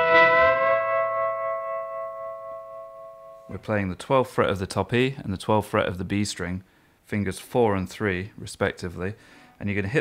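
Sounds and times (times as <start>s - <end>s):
electric guitar bent double-stop: 0.0s - 2.3s.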